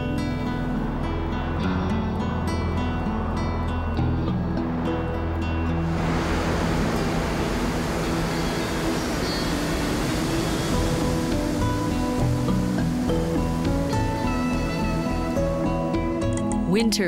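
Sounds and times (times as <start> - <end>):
music of long held notes: 0.0 - 17.0
waterfall roaring: 5.7 - 16.2.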